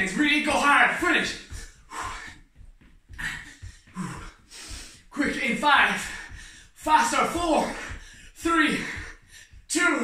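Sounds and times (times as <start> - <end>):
quick soft footfalls: 0.0 - 10.0
man breathing hard: 1.4 - 9.7.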